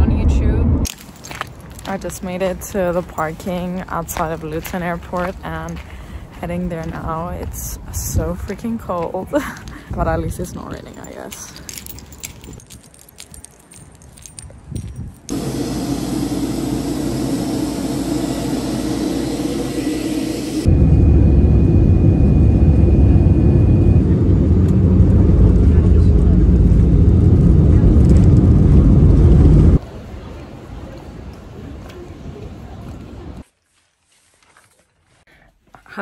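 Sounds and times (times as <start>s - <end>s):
jet engines rumbling: 0.0s - 0.9s, 15.3s - 30.9s
cabin hiss and hum: 15.3s - 29.8s.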